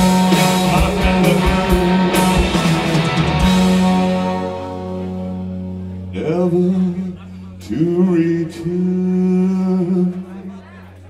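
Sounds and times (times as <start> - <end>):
low amplifier hum: 0.0 - 10.3
long held guitar note: 1.6 - 6.2.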